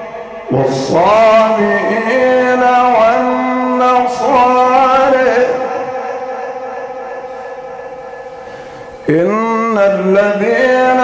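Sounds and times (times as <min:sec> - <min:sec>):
echoing held vocal note: 0:00.0 - 0:11.0.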